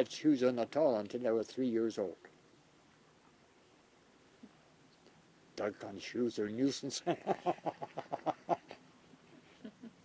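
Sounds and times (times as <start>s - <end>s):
elderly man laughing: 7.0s - 8.8s, 9.4s - 10.0s.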